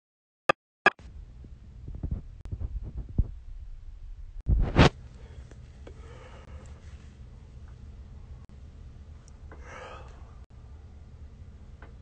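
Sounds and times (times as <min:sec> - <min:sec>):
phone microphone handling noise: 0:01.8 - 0:03.4, 0:04.5 - 0:05.0.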